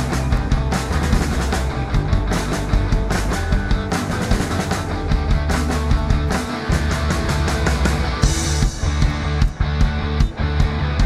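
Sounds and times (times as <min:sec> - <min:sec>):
drums and cymbals: 0:00.0 - 0:11.0
electric guitar: 0:00.0 - 0:11.0
punk rock band playing: 0:00.0 - 0:11.0.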